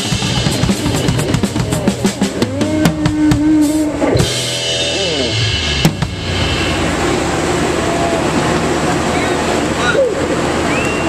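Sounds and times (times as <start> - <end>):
drum kit hits: 0.0 - 7.2
guitar and bass notes: 0.0 - 10.7
cymbals ringing: 3.3 - 9.8.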